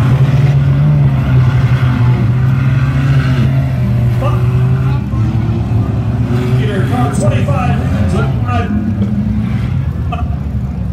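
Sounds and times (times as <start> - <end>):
race car engines droning: 0.0 - 10.9.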